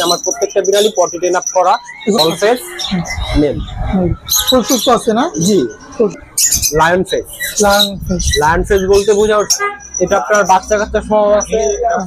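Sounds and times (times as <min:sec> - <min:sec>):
caged birds squawking: 0:00.0 - 0:12.0
people talking: 0:00.0 - 0:12.0.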